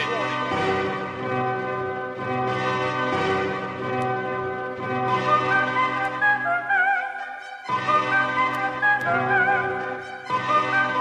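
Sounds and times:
ringing bell-like music: 0.0 - 11.0.

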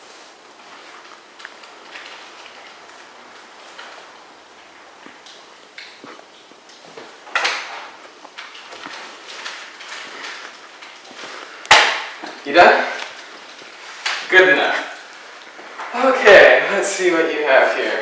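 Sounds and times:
rustling: 0.0 - 18.0.

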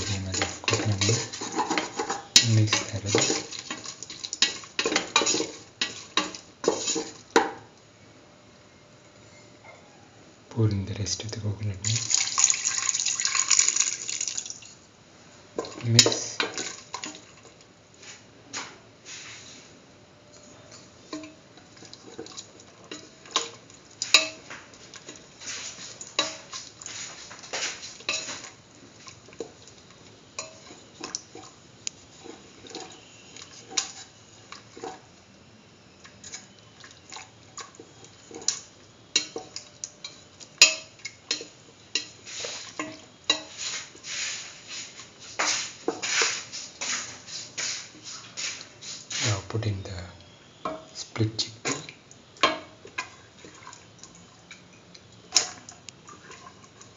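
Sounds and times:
spatula scraping metal pot: 0.0 - 7.2.

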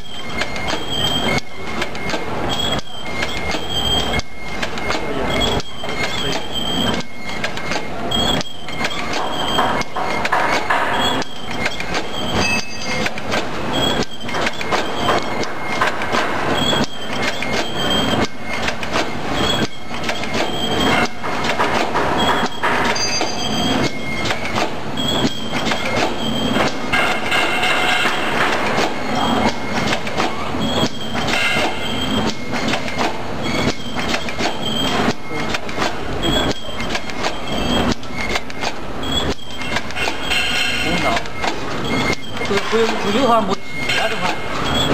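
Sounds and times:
packing machine clattering: 0.0 - 44.9
short high-pitched squeaks: 0.2 - 44.9.

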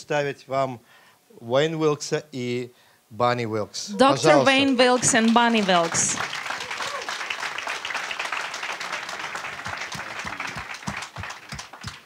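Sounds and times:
audience applause: 4.3 - 12.0.

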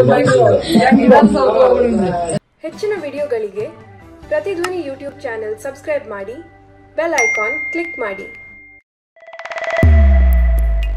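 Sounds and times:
bell-like ding: 7.2 - 8.8
logo music: 9.6 - 10.9
deep bass hit: 9.8 - 10.9.

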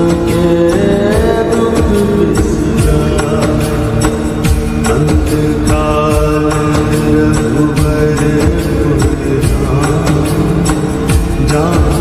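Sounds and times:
steady percussion beat: 0.0 - 12.0.

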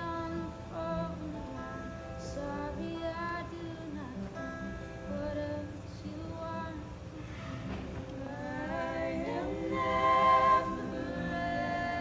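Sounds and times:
women singing softly: 0.0 - 4.4, 8.0 - 12.0
acoustic guitar: 0.0 - 12.0.

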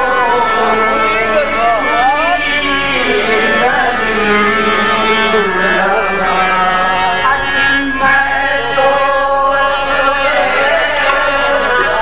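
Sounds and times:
harmonium notes: 0.0 - 12.0.

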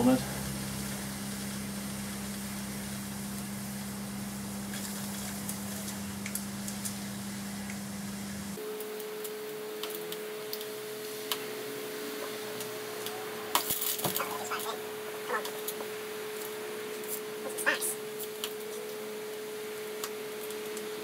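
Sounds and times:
low mains hum: 0.0 - 21.0.

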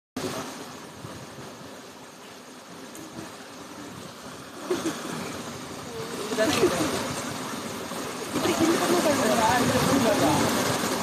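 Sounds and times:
water rushing in a channel: 0.2 - 11.0.

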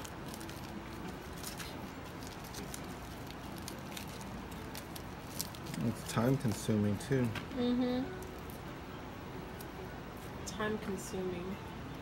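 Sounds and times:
sticky fruit flesh crackling: 0.0 - 7.5
steady background hum: 0.0 - 12.0.

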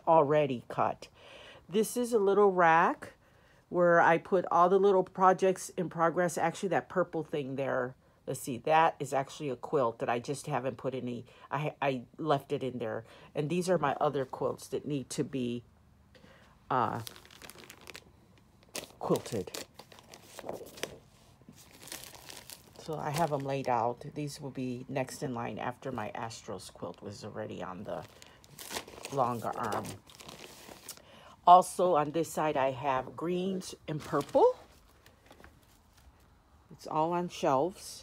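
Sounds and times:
woman speaking: 0.0 - 15.6, 16.7 - 17.2, 18.9 - 19.7, 22.8 - 28.2, 29.0 - 30.0, 31.4 - 34.8, 36.7 - 38.0
plastic bags crinkling: 16.7 - 23.9, 27.8 - 31.1, 33.7 - 36.2.

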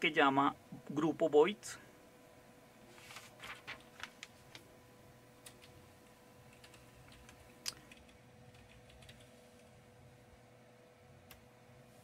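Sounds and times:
keyboard typing: 6.5 - 9.4.

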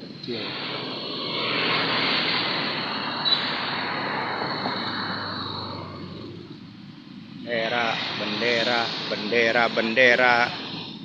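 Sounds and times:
rushing noise: 0.0 - 11.0.

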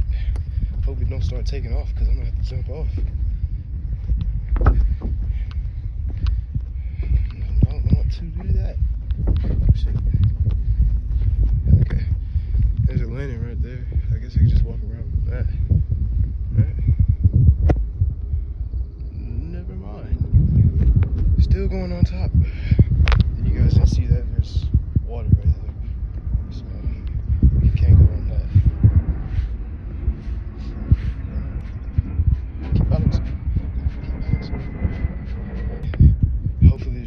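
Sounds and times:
footsteps and thumps on steel car: 2.4 - 13.2.

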